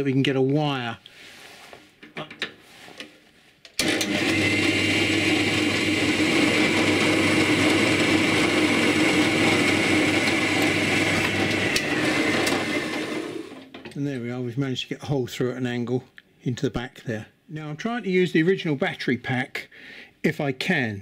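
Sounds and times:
drill bit cutting plastic: 0:03.8 - 0:13.6
drill press motor humming: 0:03.8 - 0:13.6.

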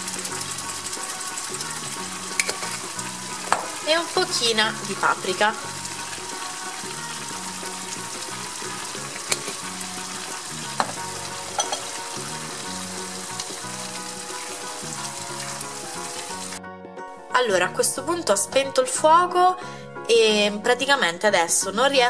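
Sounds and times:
vegetables sizzling in a frying pan: 0:00.0 - 0:16.6.

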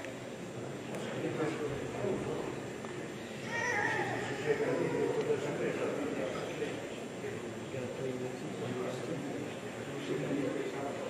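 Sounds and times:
crowd chatting: 0:00.0 - 0:11.0
baby crying: 0:03.4 - 0:05.3.

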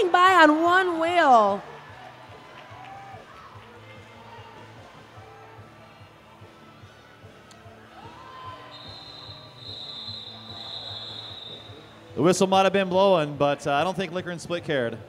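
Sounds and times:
faint crowd murmur: 0:00.0 - 0:12.3
referee whistle blasts: 0:08.6 - 0:12.0.

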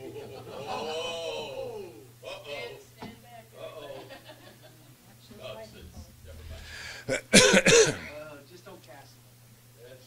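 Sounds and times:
man coughing: 0:06.7 - 0:08.2.

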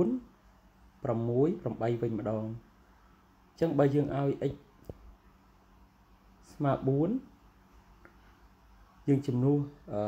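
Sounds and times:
lecturer talking: 0:00.0 - 0:00.3, 0:01.0 - 0:02.6, 0:03.6 - 0:04.7, 0:06.4 - 0:07.4, 0:09.0 - 0:10.0.

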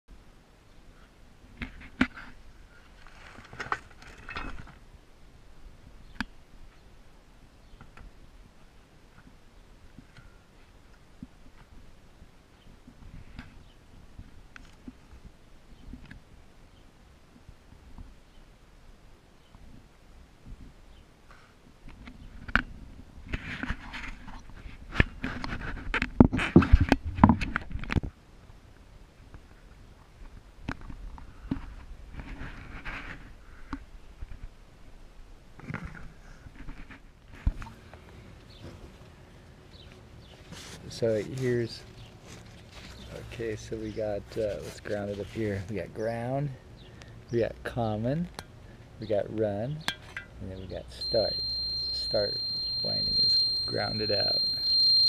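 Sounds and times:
cardboard rustling and scraping: 0:02.9 - 0:04.8, 0:40.4 - 0:43.4.

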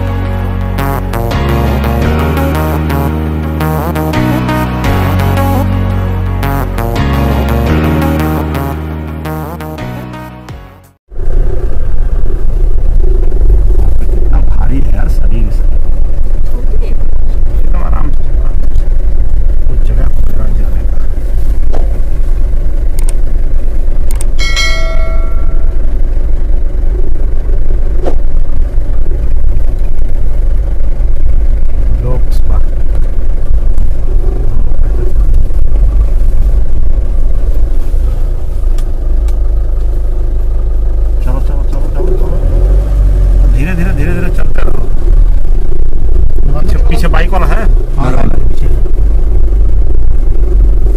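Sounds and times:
car cabin engine and road rumble: 0:11.1 - 0:50.9
brief tone: 0:24.4 - 0:26.2.

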